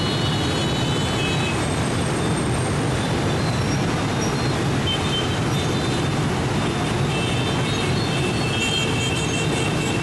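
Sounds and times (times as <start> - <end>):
dense street traffic: 0.0 - 10.0.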